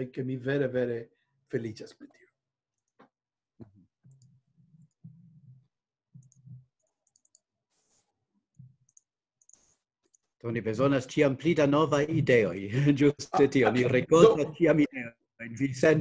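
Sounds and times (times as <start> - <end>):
faint clicks: 6.2 - 7.4.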